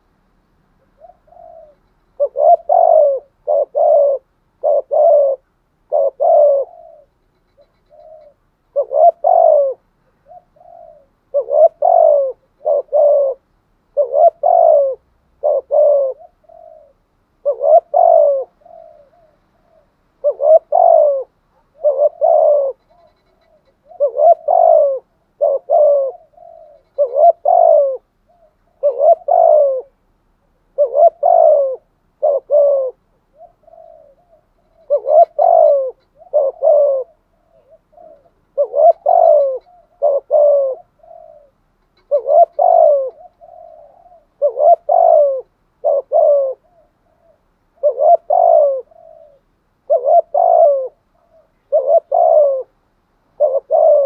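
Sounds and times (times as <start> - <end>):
dove cooing: 0.8 - 30.0, 30.6 - 54.0.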